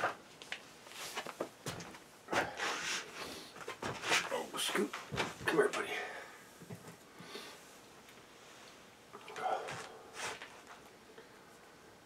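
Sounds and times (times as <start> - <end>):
rustle of clothing and wood: 0.0 - 5.8.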